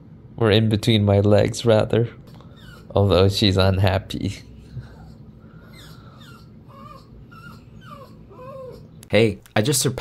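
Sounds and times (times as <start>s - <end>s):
dog whimpering: 2.3s - 3.4s, 4.6s - 9.0s.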